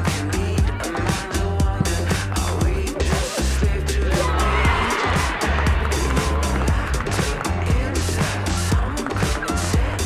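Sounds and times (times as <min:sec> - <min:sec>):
music with heavy bass and beat: 0:00.0 - 0:10.0.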